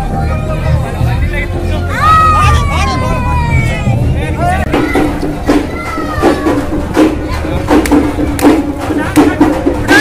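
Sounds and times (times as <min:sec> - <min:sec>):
crowd chattering and shouting: 0:00.0 - 0:10.0.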